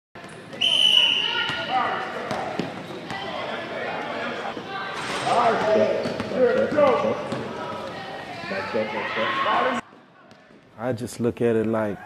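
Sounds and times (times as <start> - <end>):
voices echoing in hall: 0.3 - 12.0
basketball bouncing on court: 1.4 - 3.2, 5.6 - 7.5.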